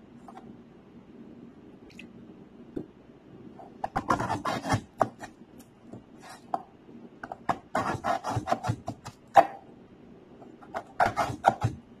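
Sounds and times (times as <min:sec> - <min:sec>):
knife cutting on cutting board: 0:03.8 - 0:05.3, 0:07.5 - 0:09.6, 0:10.7 - 0:11.8.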